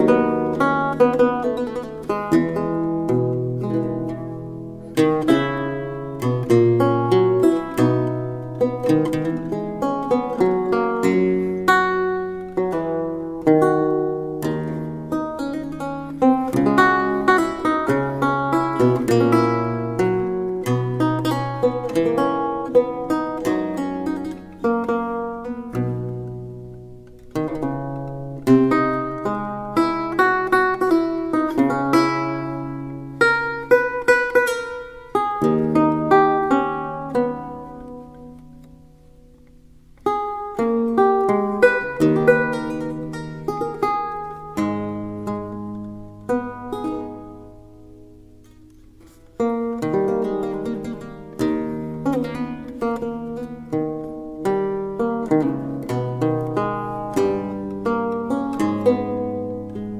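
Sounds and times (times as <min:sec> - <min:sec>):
lute playing: 0:00.0 - 0:59.9.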